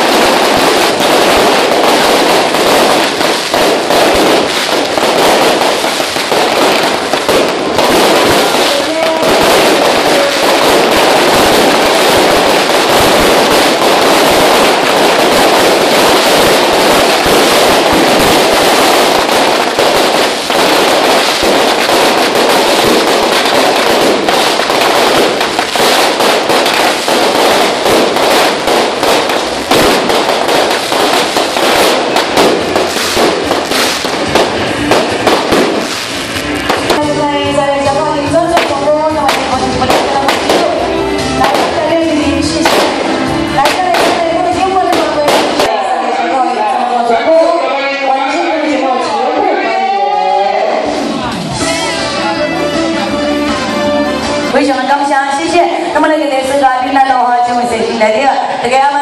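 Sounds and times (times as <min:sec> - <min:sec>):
firecrackers crackling: 0:00.0 - 0:59.0.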